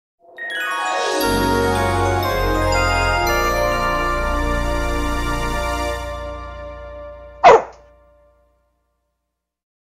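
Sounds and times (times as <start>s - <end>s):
music: 0.2s - 9.3s
dog barking: 7.4s - 7.8s.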